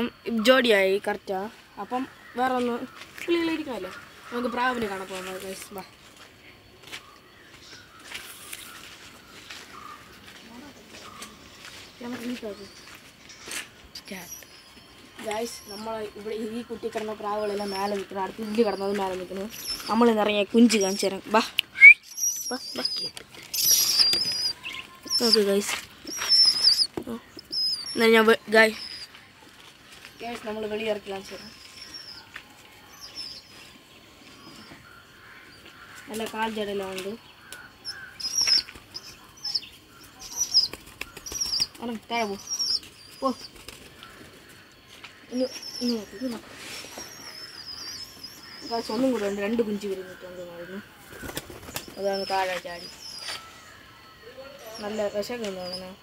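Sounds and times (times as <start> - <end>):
squeaky bird calls: 12.3 - 21.1, 21.7 - 29.2, 34.4 - 44.2, 45.1 - 56.0.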